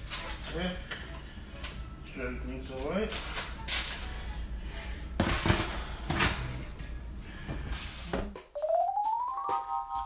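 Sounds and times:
keyboard music: 0:08.5 - 0:10.0.

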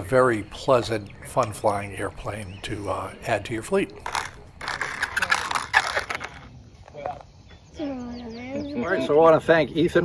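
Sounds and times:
model plane wheels scraping asphalt: 0:04.0 - 0:06.5.

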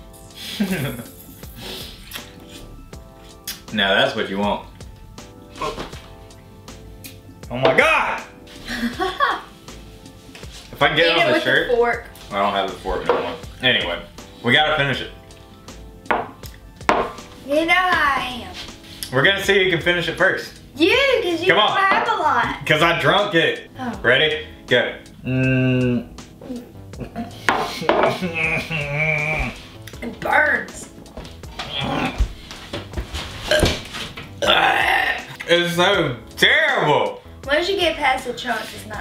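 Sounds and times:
faint background music: 0:00.0 - 0:39.0
glasses set down on wooden table: 0:13.0 - 0:13.4, 0:16.1 - 0:17.2, 0:27.5 - 0:28.2
person burping: 0:25.2 - 0:26.2, 0:27.9 - 0:29.6, 0:31.7 - 0:32.2, 0:34.4 - 0:35.4.

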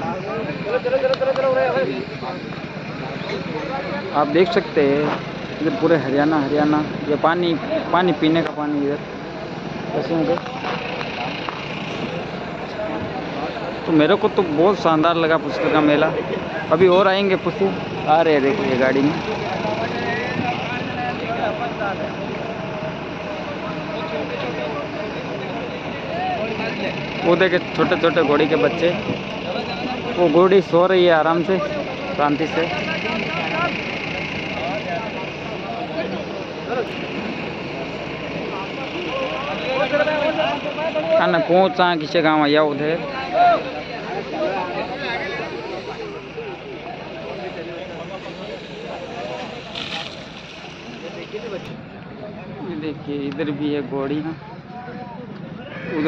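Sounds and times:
distant voices: 0:00.0 - 0:56.0
motor vehicles humming: 0:00.0 - 0:56.0
outdoor noise: 0:00.0 - 0:56.0
people talking: 0:00.0 - 0:56.0.

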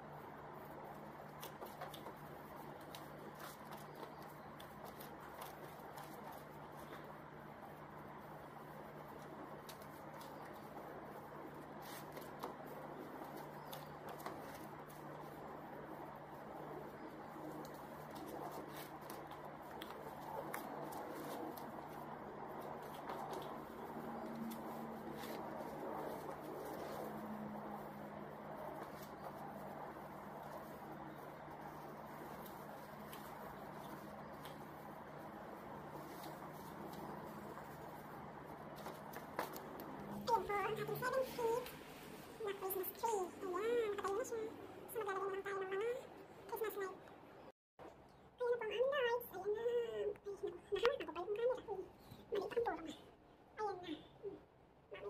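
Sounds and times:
woman's drawn-out high voice: 0:40.2 - 0:41.7, 0:42.4 - 0:47.0, 0:48.4 - 0:53.0, 0:53.6 - 0:55.0.

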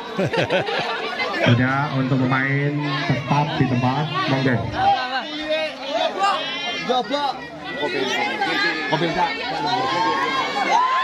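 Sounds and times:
crowd shouting and talking: 0:00.0 - 0:11.0.

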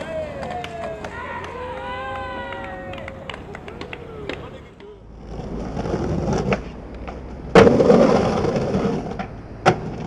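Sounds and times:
skateboard wheels rolling on concrete: 0:00.0 - 0:10.0
skateboard hitting ground: 0:03.8 - 0:10.0.

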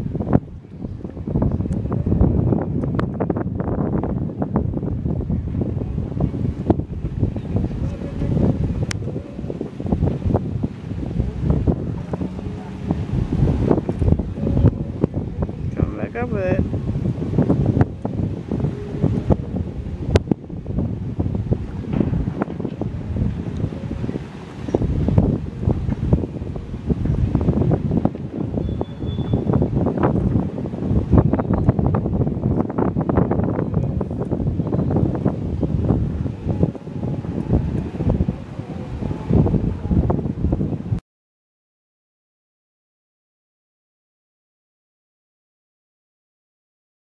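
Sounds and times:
strong wind buffeting microphone: 0:00.0 - 0:41.0.

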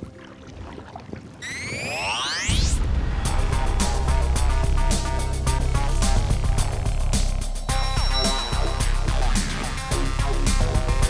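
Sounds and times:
kayak paddle splashes: 0:00.0 - 0:02.4
rising electronic sweep: 0:01.4 - 0:10.0.

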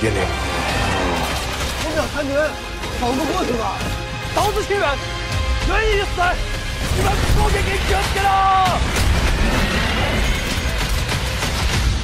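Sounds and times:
trailer music: 0:00.0 - 0:12.0.

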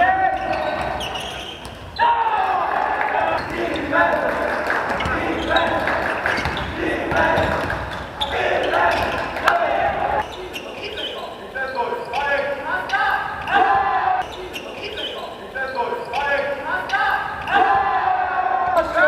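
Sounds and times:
shoe squeaks: 0:00.0 - 0:02.1, 0:05.0 - 0:06.8, 0:07.9 - 0:09.2, 0:10.2 - 0:12.3, 0:14.2 - 0:16.3
players calling: 0:00.0 - 0:19.0
basketball bouncing on court floor: 0:00.3 - 0:02.0, 0:04.9 - 0:08.2.

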